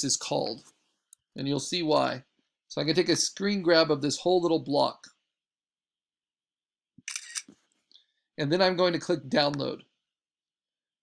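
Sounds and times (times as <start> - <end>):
camera shutter click: 7.1 - 7.5.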